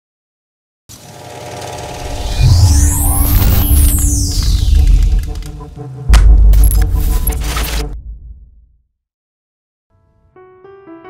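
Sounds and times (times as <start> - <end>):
rattling machine-like sound effect: 1.1 - 8.0.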